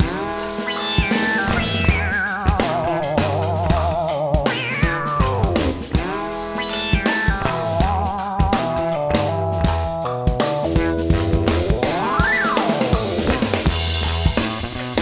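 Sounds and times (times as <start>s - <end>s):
bass guitar: 0.0s - 15.0s
drum kit: 0.0s - 15.0s.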